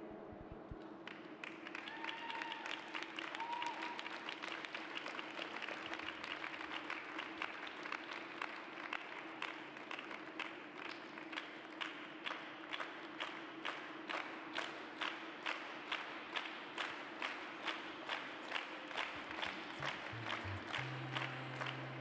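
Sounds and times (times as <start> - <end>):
small crowd applauding: 0.8 - 22.0.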